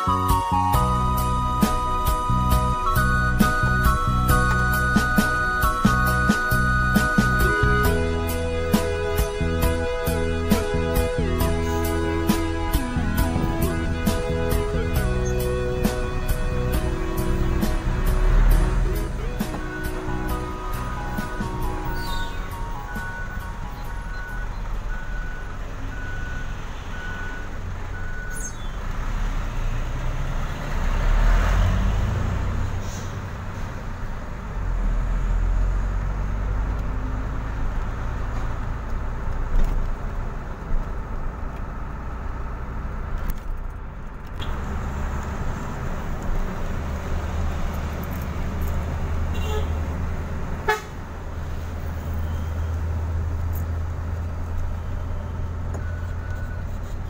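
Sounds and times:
truck diesel engine rumble: 0.0 - 57.0
repeated beep: 21.1 - 28.6, 52.0 - 52.8, 54.8 - 56.9.

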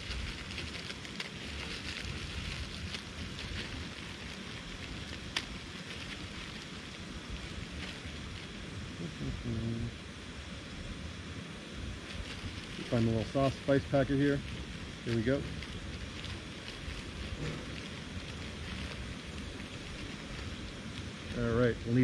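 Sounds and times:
plastic packet crinkling: 0.0 - 8.5, 12.0 - 21.5
gas stove burner hissing: 0.0 - 22.0.

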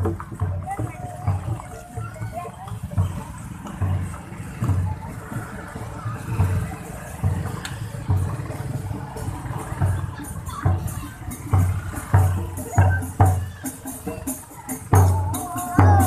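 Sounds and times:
crowd chatter: 0.0 - 16.0
motor scooters running: 0.0 - 16.0.

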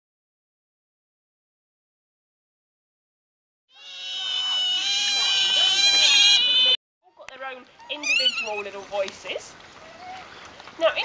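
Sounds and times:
otters squeaking and chirping: 3.7 - 6.8, 7.8 - 8.8.

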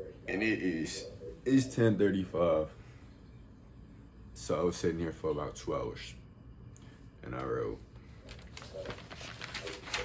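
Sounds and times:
notebook pages rustling: 7.4 - 10.0.

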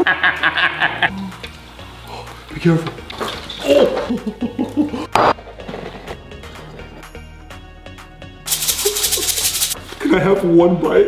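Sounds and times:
sprinkles rattling out of container: 8.5 - 9.8.

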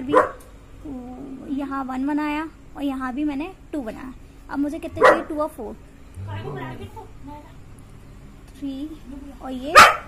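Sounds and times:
dog barking: 0.0 - 0.5, 5.0 - 5.5, 9.7 - 10.0
soft pitched vocal sounds: 4.8 - 7.1.

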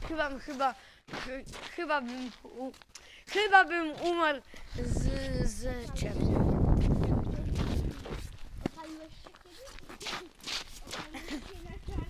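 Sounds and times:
microphone rubbing against jacket: 4.7 - 12.0.

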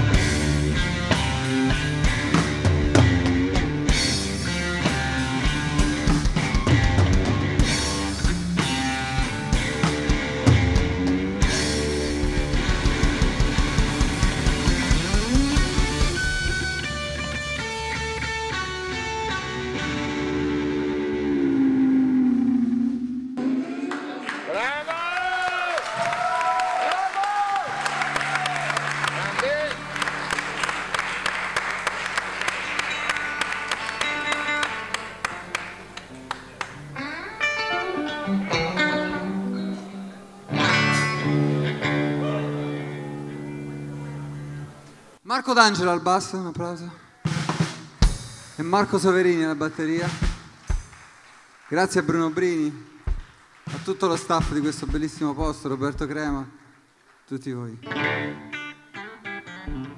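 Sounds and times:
drums hammering: 0.0 - 18.5, 47.2 - 51.1, 52.9 - 56.6
bass guitar: 0.0 - 24.0, 27.9 - 45.2, 57.8 - 59.9
distorted electric guitar: 0.0 - 24.3, 32.6 - 45.2, 57.8 - 59.9.

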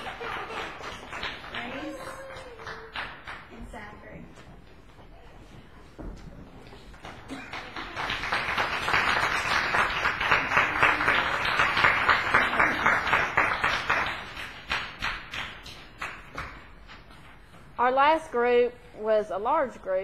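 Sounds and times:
small audience applauding: 0.0 - 3.8, 6.9 - 17.1.

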